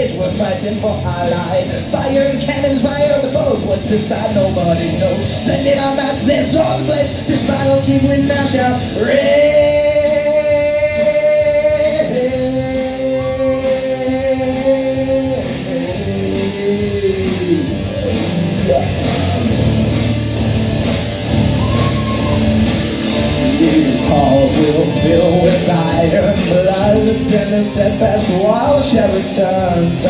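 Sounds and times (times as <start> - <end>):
drums: 0.0 - 30.0
electric guitars: 0.0 - 30.0
rock band playing live: 0.0 - 30.0.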